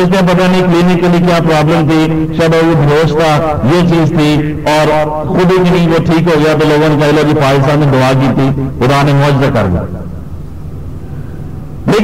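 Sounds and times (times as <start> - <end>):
man's voice: 0.0 - 10.1
low background hum: 0.0 - 12.0.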